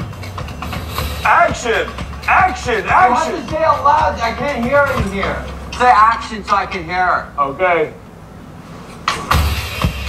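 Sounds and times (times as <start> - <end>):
hiss: 0.4 - 1.4.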